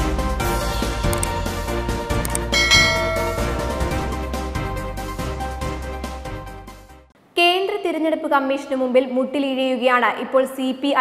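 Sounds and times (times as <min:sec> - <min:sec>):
background music: 0:00.0 - 0:07.1
bell-like chime: 0:02.5 - 0:04.3.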